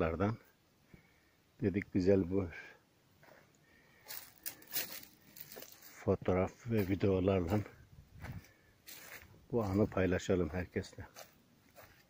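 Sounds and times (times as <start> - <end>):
dry leaves rustling: 4.0 - 6.1, 6.8 - 10.0.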